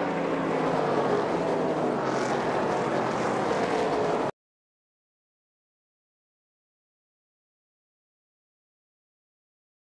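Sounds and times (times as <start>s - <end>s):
race truck engines droning: 0.0s - 4.3s.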